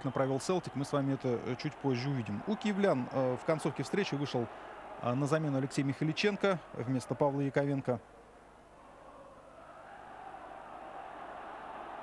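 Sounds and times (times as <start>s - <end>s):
football stadium crowd noise: 0.0s - 12.0s.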